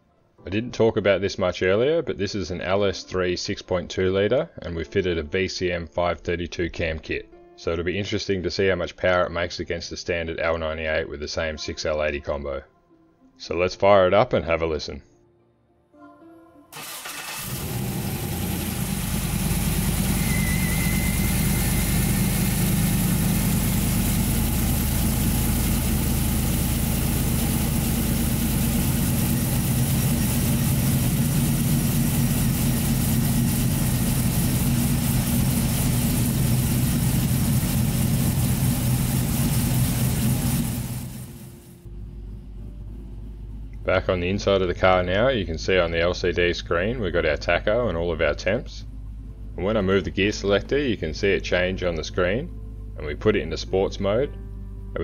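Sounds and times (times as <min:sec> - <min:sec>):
car engine cranking and idling: 0:16.8 - 0:45.9
low hum: 0:17.4 - 0:55.0.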